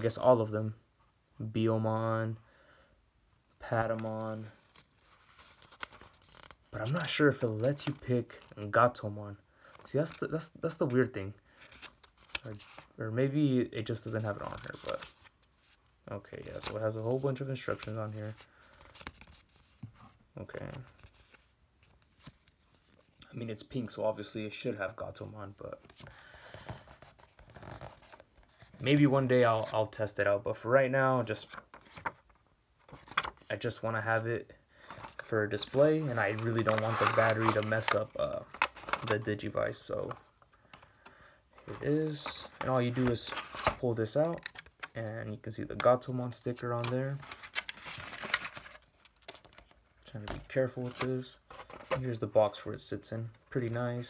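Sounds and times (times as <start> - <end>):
paper rustling: 3.8 - 8.5, 11.6 - 12.9, 14.0 - 15.8, 16.4 - 23.2, 31.4 - 33.5, 34.8 - 40.8, 41.6 - 44.9, 46.7 - 52.2
plastic packaging crinkling: 34.9 - 39.3, 47.1 - 49.7.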